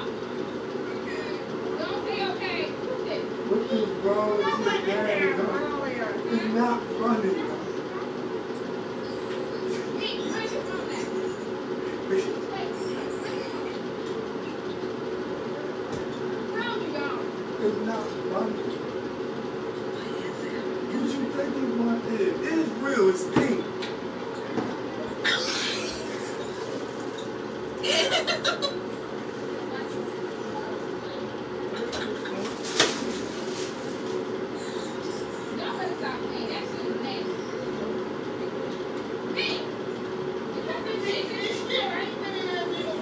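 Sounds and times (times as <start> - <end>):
droning hum: 0.0 - 43.0
faint voices: 0.0 - 43.0.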